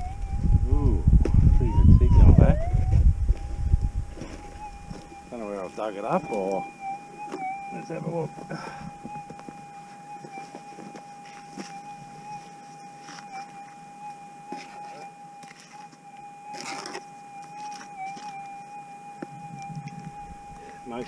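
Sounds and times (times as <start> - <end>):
metal detector humming tone: 0.0 - 21.0
hand tool digging in gravel: 16.5 - 17.0.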